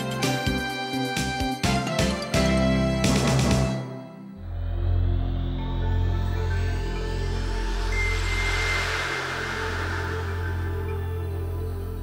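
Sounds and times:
low synthesizer drone: 4.4s - 12.0s
thin high tone: 6.4s - 12.0s
whoosh: 6.4s - 12.0s.

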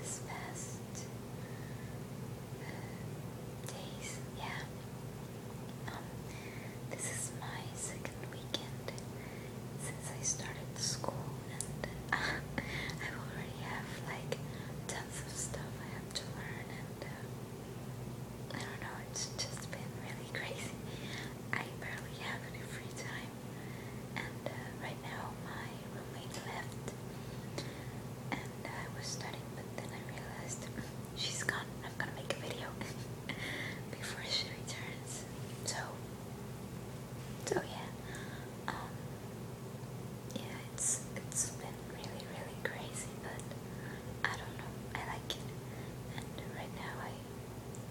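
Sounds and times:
woman whispering: 0.0s - 1.1s, 3.7s - 4.7s, 5.8s - 6.1s, 6.9s - 9.1s, 9.8s - 17.3s, 18.5s - 23.3s, 24.2s - 27.0s, 28.3s - 36.0s, 37.4s - 39.0s, 40.3s - 43.6s, 44.2s - 45.5s, 46.1s - 47.3s
steady low hum: 0.0s - 47.9s.

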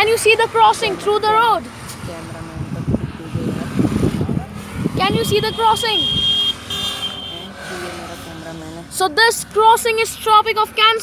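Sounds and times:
motorcycles passing on highway: 0.0s - 11.0s.

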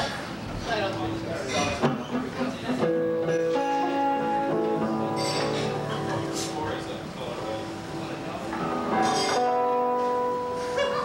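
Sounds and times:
acoustic guitar note ringing: 2.9s - 10.7s.

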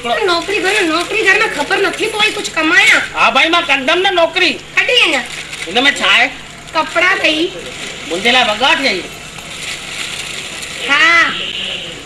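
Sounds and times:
plastic bag crinkling: 0.0s - 3.0s, 4.9s - 11.2s.

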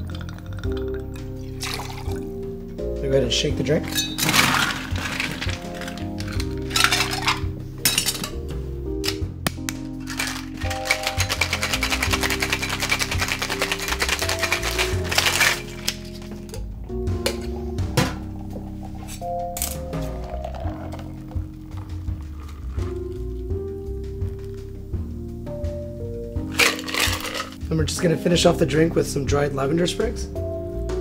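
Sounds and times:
background music: 0.0s - 31.0s
ice rattling in cocktail shaker: 1.6s - 2.1s, 3.8s - 8.3s, 10.0s - 16.6s, 19.0s - 21.4s, 26.5s - 27.6s.

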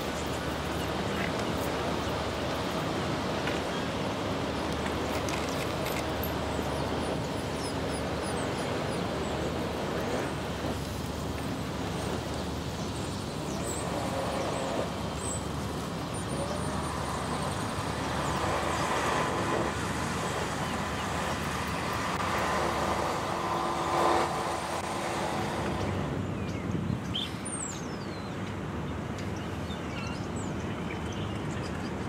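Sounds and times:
distant traffic and machinery: 0.0s - 32.0s.

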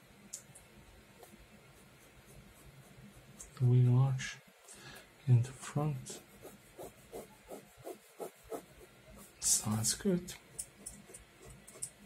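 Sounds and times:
pen scratching on paper: 6.1s - 9.9s, 10.8s - 12.0s.

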